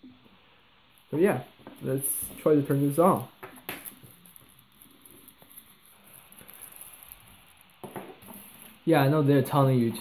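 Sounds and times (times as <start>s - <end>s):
plastic wrapping rustling: 1.0s - 10.0s.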